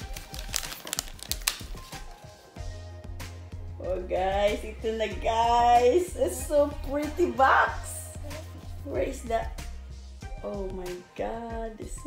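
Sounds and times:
plastic wrap crinkling: 0:00.0 - 0:02.5
background music: 0:00.0 - 0:12.0.

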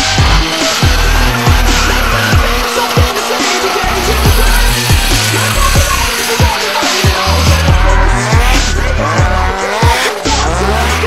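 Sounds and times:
electronic music with heavy kick: 0:00.0 - 0:11.0
tyres squealing: 0:00.0 - 0:11.0.

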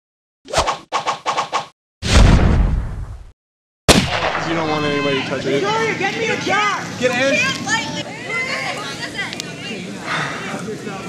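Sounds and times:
heavy low boom: 0:02.0 - 0:03.3, 0:03.9 - 0:04.9
sharp crack: 0:02.0 - 0:03.3, 0:03.9 - 0:05.0
sharp hits: 0:03.9 - 0:05.0.

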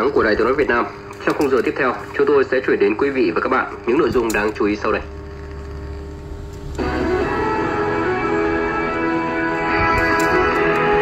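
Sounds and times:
radio music: 0:00.0 - 0:11.0
low hum: 0:03.6 - 0:11.0.

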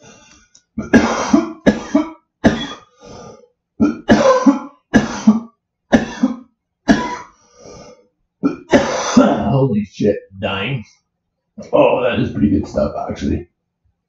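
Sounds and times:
man coughing: 0:00.8 - 0:02.9, 0:03.8 - 0:07.3, 0:08.4 - 0:09.6.

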